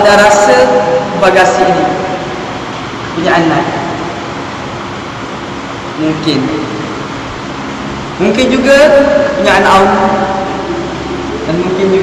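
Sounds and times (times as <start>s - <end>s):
rushing hall room tone: 0.0s - 12.0s.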